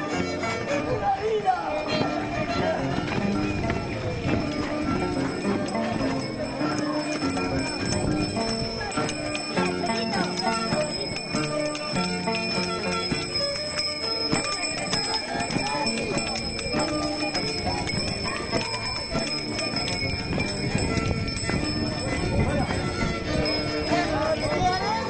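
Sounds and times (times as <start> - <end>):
crowd singing and shouting: 0.0 - 25.0.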